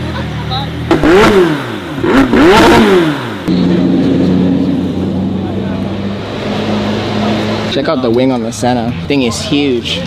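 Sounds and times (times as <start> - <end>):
crowd chatter: 0.0 - 0.9, 3.5 - 10.0
car engine idling: 0.0 - 10.0.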